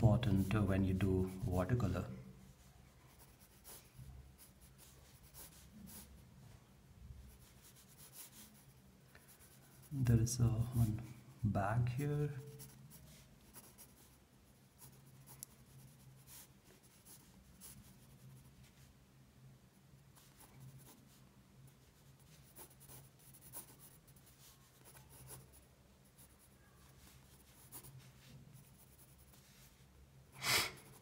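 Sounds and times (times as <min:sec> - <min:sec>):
pencil scratching on paper: 0:00.0 - 0:01.9, 0:03.1 - 0:06.2, 0:07.3 - 0:11.2, 0:12.4 - 0:18.8, 0:20.2 - 0:29.8.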